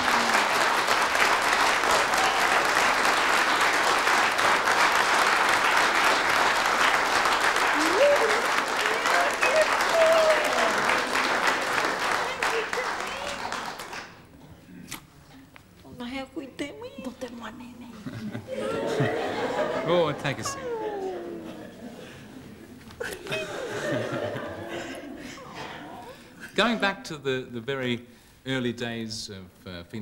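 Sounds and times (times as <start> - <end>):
audience applauding: 0.0 - 14.3, 18.6 - 22.3.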